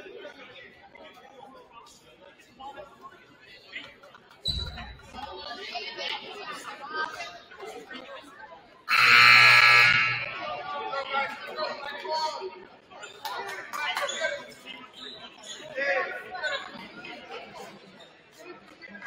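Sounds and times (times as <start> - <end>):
crowd chatter: 0.0 - 19.0
scoreboard horn buzz: 8.9 - 10.4.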